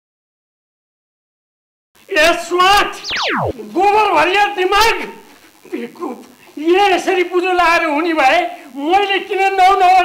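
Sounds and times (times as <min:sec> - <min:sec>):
falling whistle: 0:02.9 - 0:03.6.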